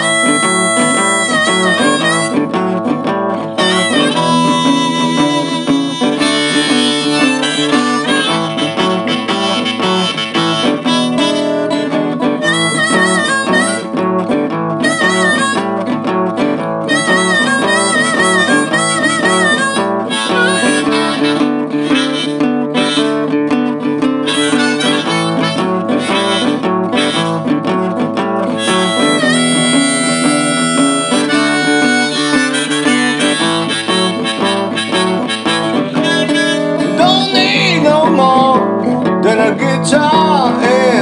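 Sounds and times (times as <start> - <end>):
acoustic guitar backing: 0.0 - 41.0
harmonica blues solo: 0.0 - 41.0.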